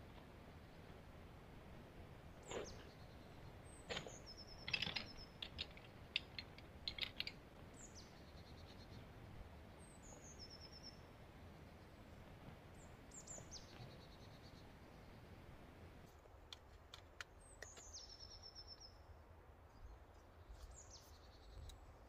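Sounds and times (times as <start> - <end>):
small bird singing: 2.4 - 15.4, 17.3 - 19.1, 19.7 - 21.9.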